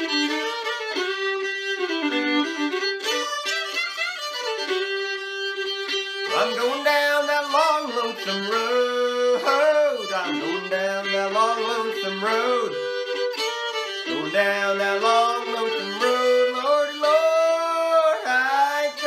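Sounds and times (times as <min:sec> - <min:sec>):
fiddle tune with drone: 0:00.0 - 0:19.0
man singing: 0:06.2 - 0:13.2, 0:14.0 - 0:19.0.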